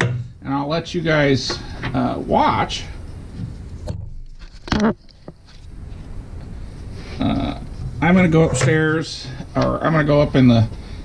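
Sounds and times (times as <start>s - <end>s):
man saying uh: 7.2s - 10.6s.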